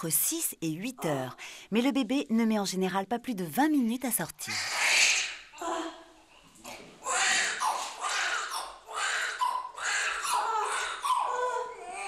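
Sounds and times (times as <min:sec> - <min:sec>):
newborn baby crying: 0:04.5 - 0:06.1, 0:07.0 - 0:12.0.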